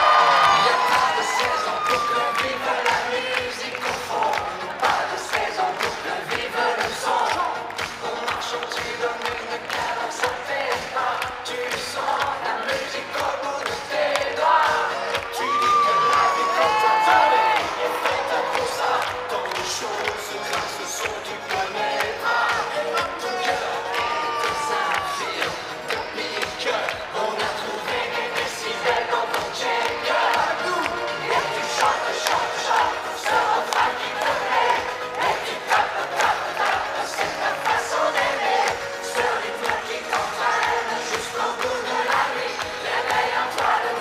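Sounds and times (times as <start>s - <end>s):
crowd cheering and shouting: 0.0s - 44.0s
live pop music: 0.0s - 44.0s.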